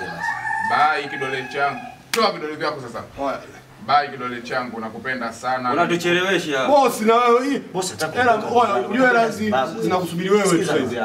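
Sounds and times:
rooster crowing: 0.0 - 2.1
men's voices: 0.0 - 11.0.

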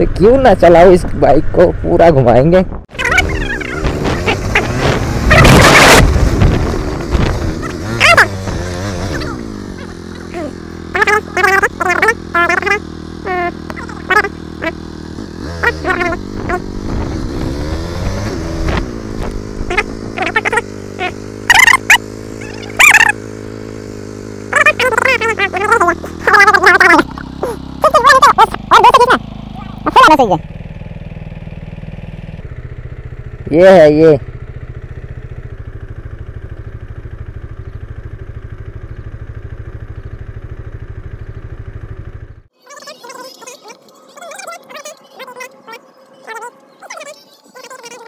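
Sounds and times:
motorcycle engine running: 0.0 - 48.0.

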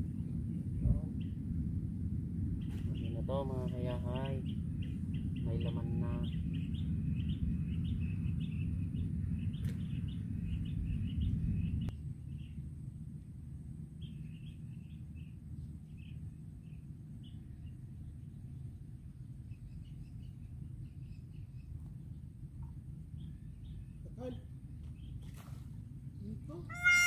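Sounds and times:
steady low rumble: 0.0 - 27.0
small birds chirping: 2.5 - 12.6, 14.0 - 27.0.

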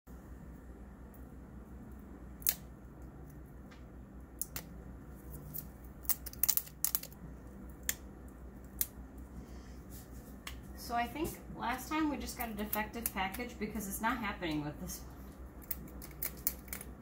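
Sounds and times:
low steady hum: 0.1 - 17.0.

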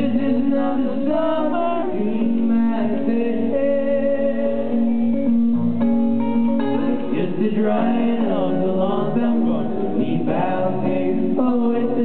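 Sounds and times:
solo guitar playing: 0.0 - 12.0.

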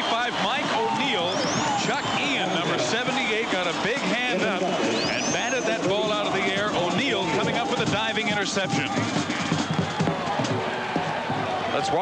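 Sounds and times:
band music with drums: 0.0 - 12.0
stadium background noise: 0.0 - 12.0.

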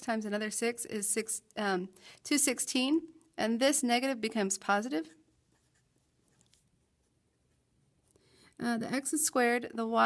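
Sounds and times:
marker scratching on paper: 5.4 - 7.7.

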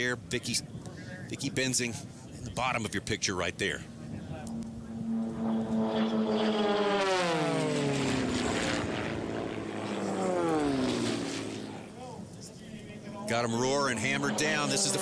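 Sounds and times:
propeller planes flying past: 0.0 - 15.0.

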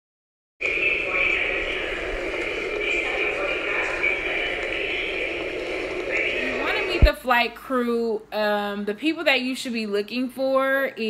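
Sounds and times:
airliner cabin noise: 0.6 - 7.6.

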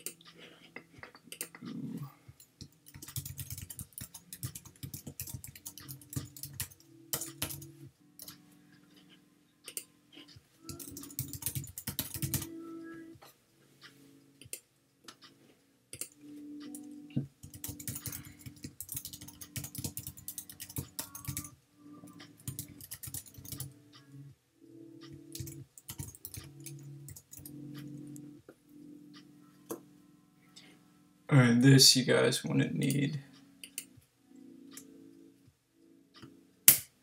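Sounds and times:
computer keyboard typing: 2.6 - 8.4, 10.6 - 12.6, 16.0 - 21.5, 22.1 - 23.8, 25.0 - 28.2.

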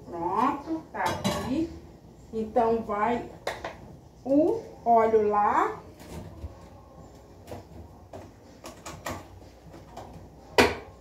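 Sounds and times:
cookware clicking and knocking: 1.0 - 1.6, 8.6 - 9.3.

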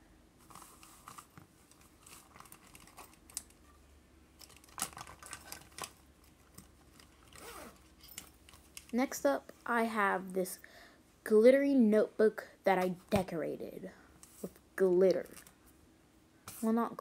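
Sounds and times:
pencils and pouch rustling: 0.4 - 3.6, 4.4 - 9.0.

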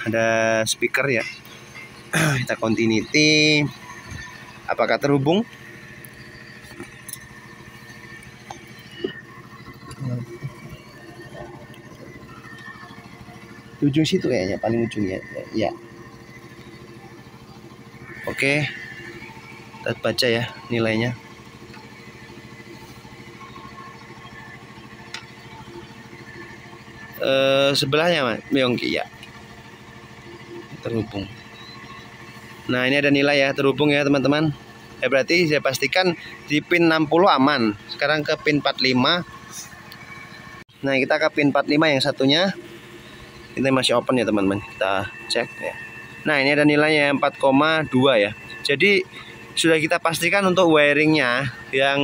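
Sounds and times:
faint high whine: 0.0 - 52.0
machinery hum: 0.0 - 52.0.

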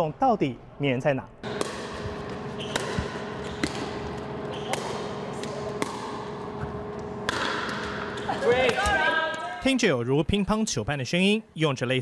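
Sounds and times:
players' voices: 8.1 - 12.0.

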